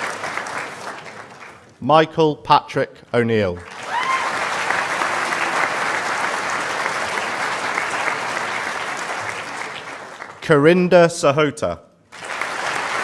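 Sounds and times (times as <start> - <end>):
audience applauding: 0.0 - 1.7, 3.6 - 10.6, 12.1 - 13.0.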